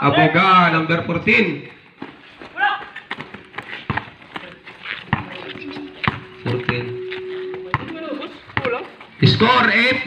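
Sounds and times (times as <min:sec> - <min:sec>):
basketball bouncing on concrete: 0:02.0 - 0:06.9, 0:07.6 - 0:09.4.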